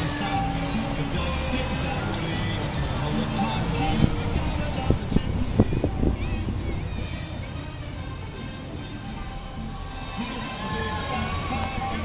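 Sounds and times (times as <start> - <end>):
car rumbling: 0.0 - 12.0
christmas song playing: 0.0 - 12.0.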